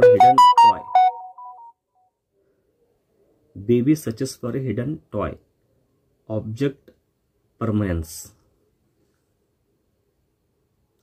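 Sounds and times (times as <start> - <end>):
smartphone notification chime: 0.0 - 1.7.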